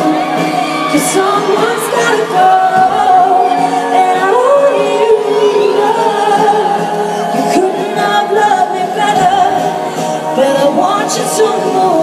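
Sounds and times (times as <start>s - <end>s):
faint crowd: 0.0s - 12.0s
woman singing with band: 0.0s - 12.0s.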